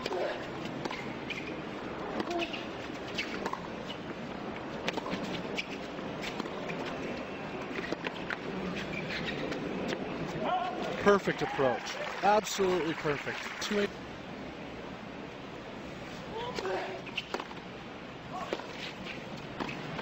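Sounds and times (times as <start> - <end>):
stadium crowd ambience: 6.5 - 17.1.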